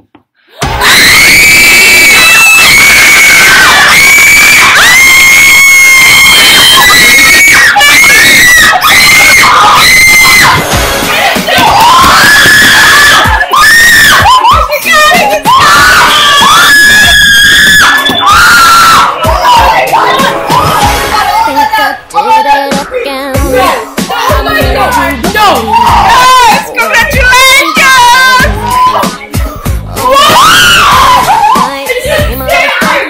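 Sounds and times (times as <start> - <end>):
girls and woman screaming excitedly: 0.7 - 10.6, 11.2 - 21.7, 24.2 - 29.1, 30.0 - 33.0.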